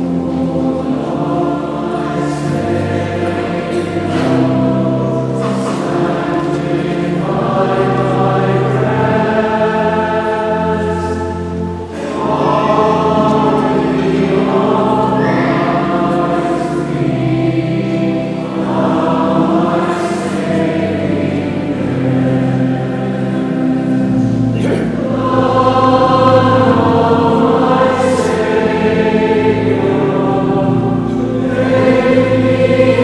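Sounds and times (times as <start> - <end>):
choir singing long held notes: 0.0 - 33.0.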